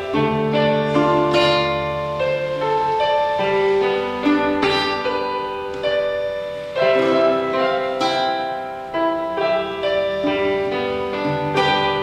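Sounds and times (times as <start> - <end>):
acoustic guitar plucked: 0.0 - 12.0
electronic keyboard notes: 0.0 - 12.0.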